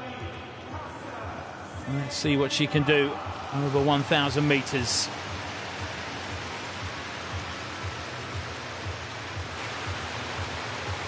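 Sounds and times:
stadium crowd noise: 0.0s - 7.7s.

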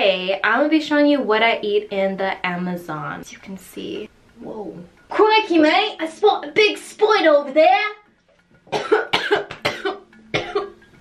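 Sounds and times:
woman coughing: 8.7s - 10.8s.

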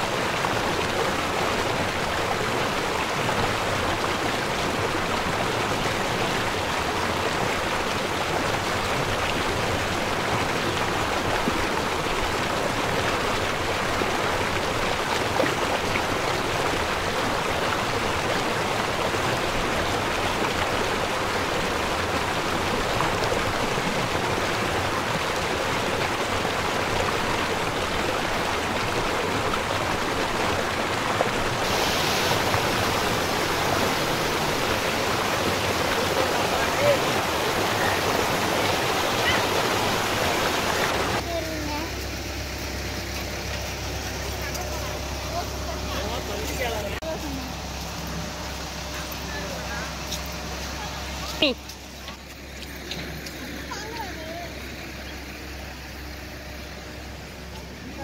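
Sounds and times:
stream rushing over rocks: 0.0s - 58.0s.

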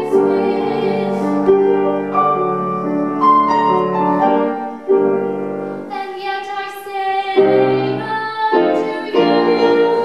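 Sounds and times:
woman singing classical song: 0.0s - 1.8s, 5.8s - 10.0s
piano accompaniment: 0.0s - 10.0s.

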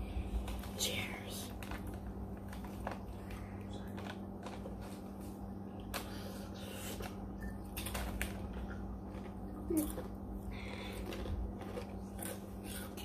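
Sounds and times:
steady low hum: 0.0s - 13.0s
small clicks and crackles: 0.4s - 5.0s
chewing noodles: 1.5s - 13.0s.

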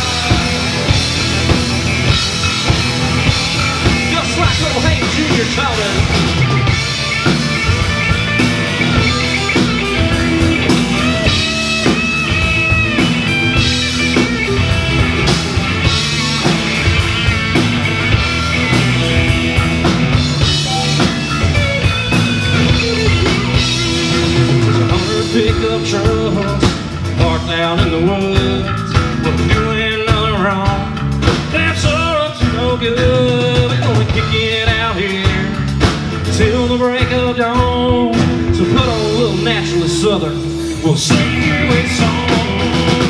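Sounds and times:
bass guitar: 0.0s - 43.0s
drum kit: 0.0s - 43.0s
electric guitar: 0.0s - 43.0s.

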